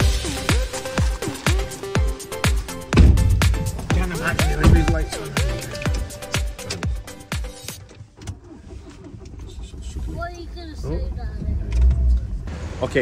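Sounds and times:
dance music with steady beat: 0.0 - 7.6
motor vehicle rumble: 0.0 - 13.0.

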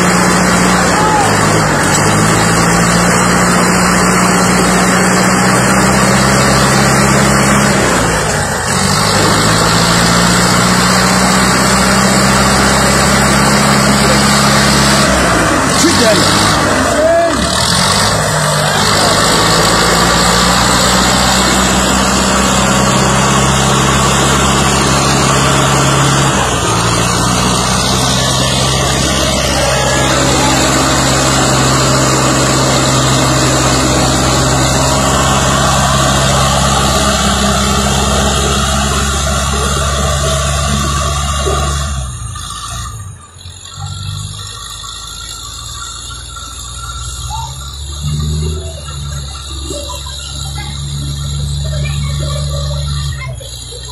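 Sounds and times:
tractor diesel engine straining: 0.0 - 53.9.

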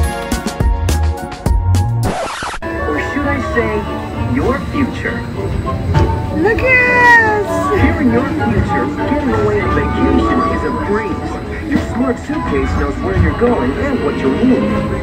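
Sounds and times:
voices: 2.7 - 15.0.

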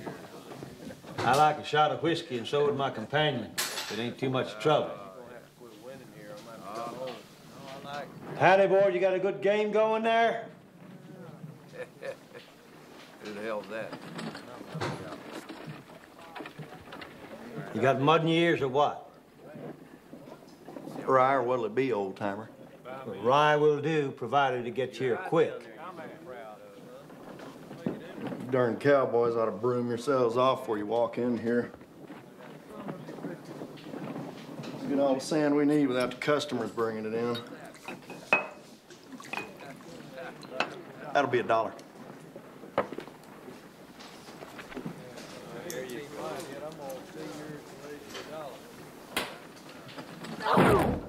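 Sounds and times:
glasses clinking: 3.6 - 4.3, 37.3 - 39.8.

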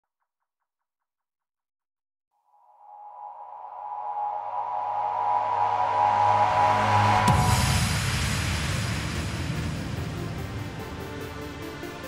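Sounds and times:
sustained synth pad: 2.6 - 12.0
low bass tone: 4.1 - 11.2.

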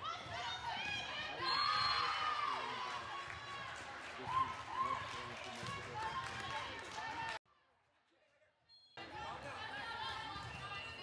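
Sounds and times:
crowd cheering and shouting: 0.0 - 7.4.

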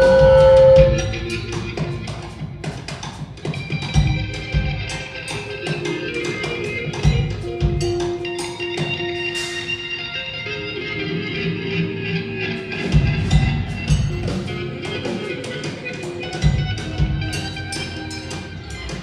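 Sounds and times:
heavy drum beats: 0.0 - 9.7, 12.8 - 19.0
live band playing: 0.0 - 19.0.

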